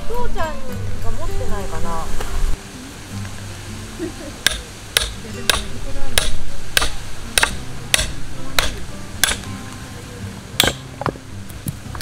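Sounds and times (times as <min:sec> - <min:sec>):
background music: 0:00.0 - 0:12.0
hammer striking metal blade: 0:04.4 - 0:09.5, 0:10.6 - 0:10.8.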